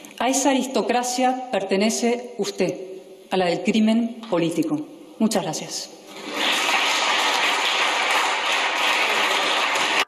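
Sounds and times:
crowd applauding: 6.1 - 10.0.

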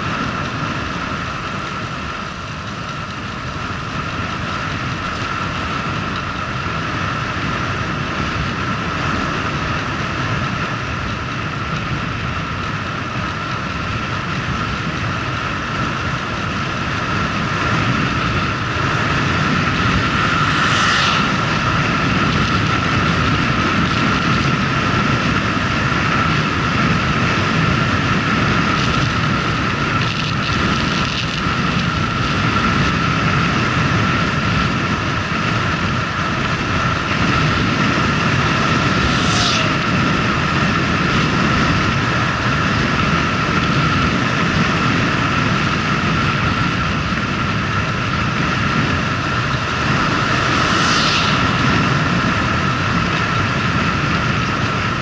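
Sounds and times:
moped engine whine: 0.0 - 55.0
wind rumble on microphone: 0.0 - 55.0.

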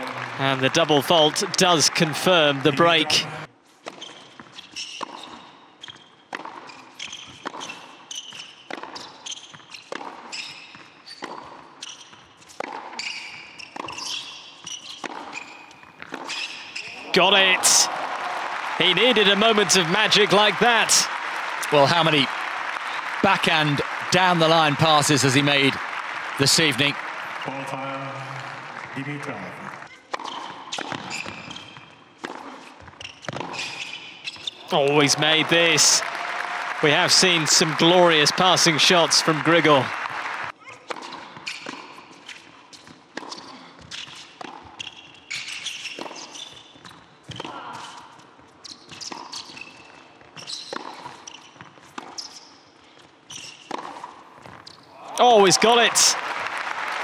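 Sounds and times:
applause: 0.0 - 3.5, 17.0 - 29.9, 34.6 - 40.6, 55.1 - 57.0
shoes squeaking on court: 3.3 - 17.1, 30.0 - 34.6, 40.9 - 55.0.

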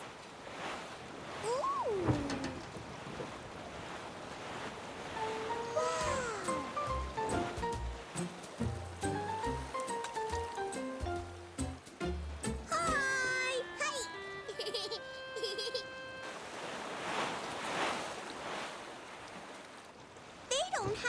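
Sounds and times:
light stepping melody: 5.2 - 16.3.

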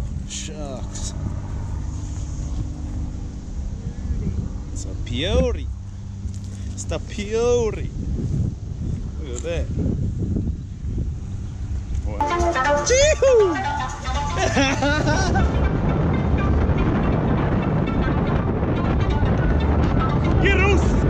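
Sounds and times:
car road and engine noise: 0.0 - 21.0
laughter: 14.4 - 15.6.

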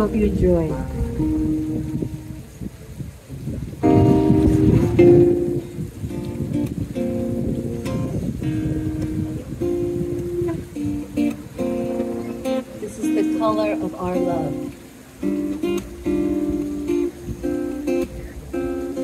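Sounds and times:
acoustic guitar strummed chords: 3.8 - 19.0.

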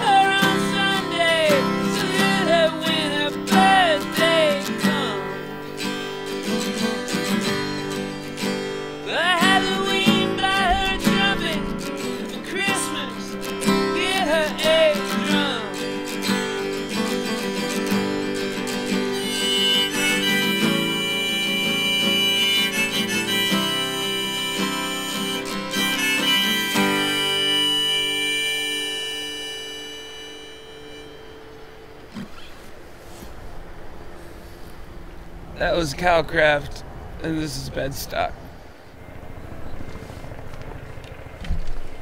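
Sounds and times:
harmonica: 0.0 - 33.4
strummed acoustic guitar: 0.0 - 33.4.

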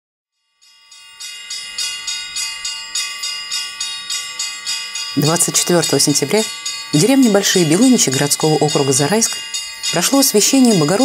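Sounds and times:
church bells ringing a peal: 0.5 - 11.0.

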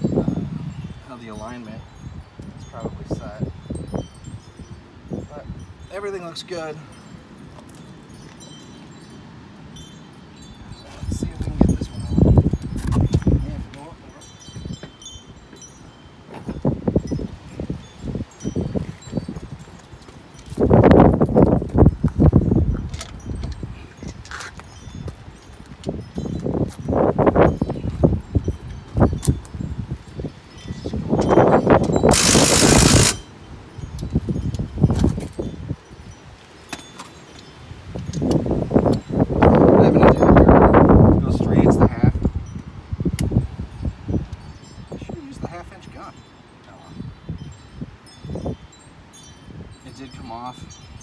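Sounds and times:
metal clinks and scrapes on wheel: 22.8 - 25.0.

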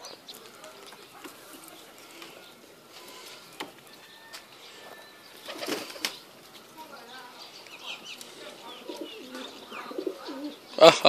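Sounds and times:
pigeons cooing: 0.0 - 6.5, 7.7 - 11.0.

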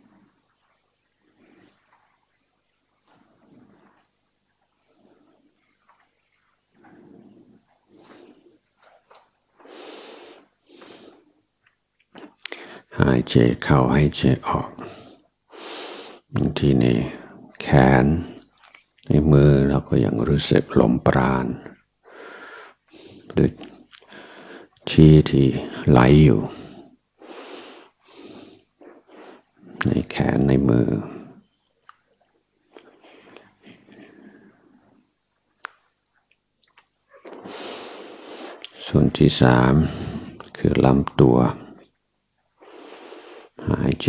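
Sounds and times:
faint breaths: 0.0 - 11.5, 12.4 - 13.1, 14.7 - 17.5, 21.5 - 31.7, 32.6 - 35.2, 37.1 - 40.7, 42.6 - 44.0
mouth clicks: 9.1 - 12.8, 31.8 - 34.0, 35.6 - 37.6, 38.4 - 38.8
soft in-breath: 9.6 - 11.4, 12.5 - 12.9, 22.0 - 24.8, 32.8 - 35.1, 37.2 - 38.7
man speaking calmly: 12.4 - 15.1, 16.3 - 21.8, 23.3 - 23.7, 24.8 - 26.8, 29.7 - 31.4, 38.6 - 41.9, 43.6 - 44.0.

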